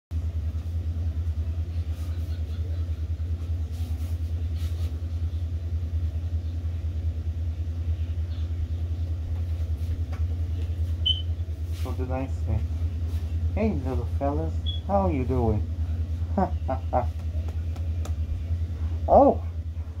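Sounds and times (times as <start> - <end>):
steady low rumble: 0.1 - 20.0
faint soft rustles: 3.3 - 5.3, 11.6 - 12.1.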